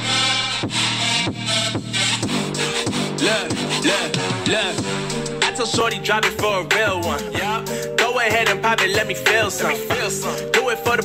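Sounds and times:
hip-hop beat through speaker: 0.0 - 11.0.

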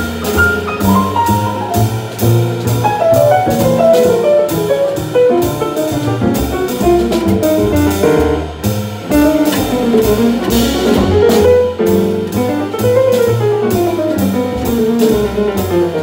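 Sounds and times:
grand piano runs: 0.0 - 16.0
walking double bass: 0.0 - 16.0.

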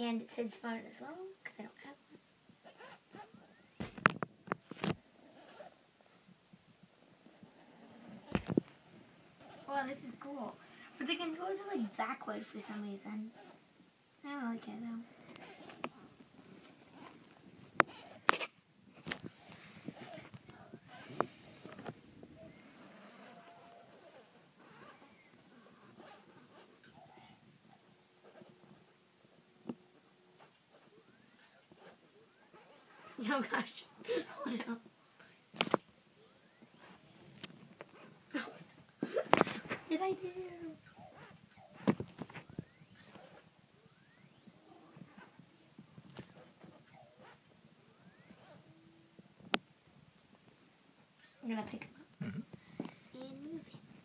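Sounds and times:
toy robot whirring over carpet: 2.6 - 4.0, 4.7 - 5.8, 7.5 - 11.9, 15.2 - 18.5, 19.2 - 27.2, 30.0 - 33.7, 35.6 - 38.3, 39.3 - 49.0.

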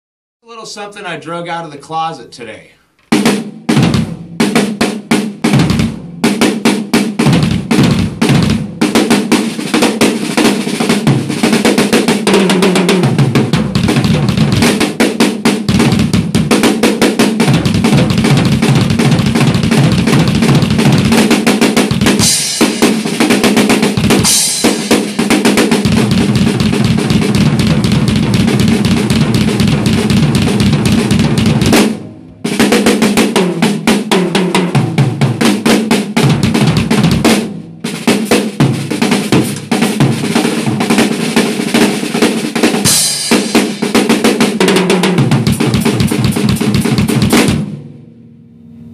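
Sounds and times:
drum kit playing: 0.5 - 48.0.

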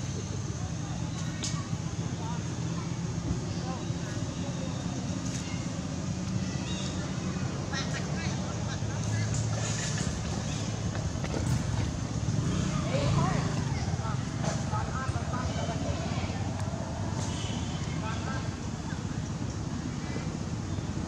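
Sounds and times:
indistinct voices: 0.0 - 20.3.

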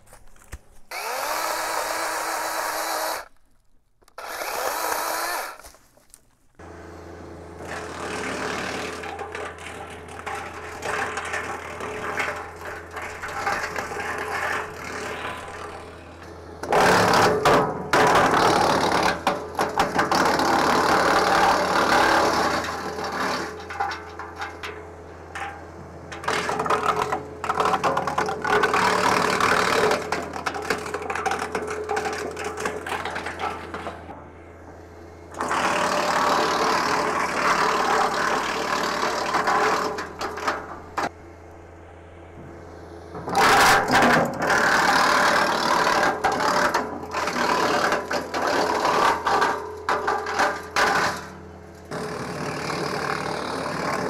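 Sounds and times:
wood chipper chewing branches: 0.0 - 54.0.

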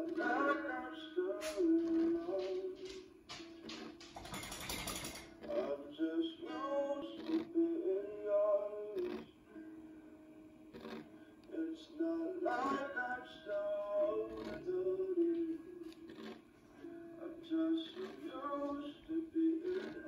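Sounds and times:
song playing from vinyl record: 0.0 - 4.2, 5.3 - 20.0.

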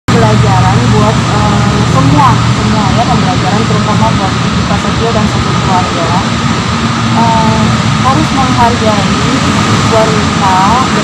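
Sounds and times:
woman speaking: 0.1 - 6.3, 7.2 - 11.0
low background rumble: 0.1 - 11.0.

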